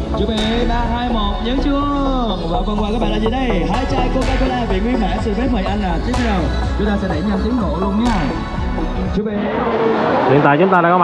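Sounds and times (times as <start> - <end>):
sharp percussive hit: 0.0 - 9.1
loud music with singing voice: 0.0 - 9.2.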